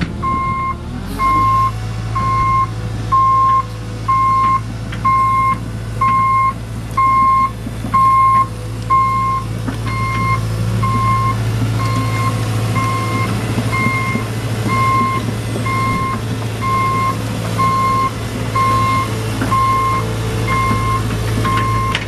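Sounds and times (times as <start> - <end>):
excavator diesel engine running: 0.0 - 22.0.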